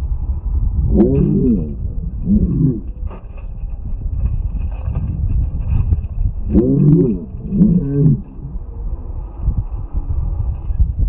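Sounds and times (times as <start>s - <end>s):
wind on microphone: 0.0s - 11.0s
deep wavering calls: 0.8s - 3.1s, 6.4s - 9.3s.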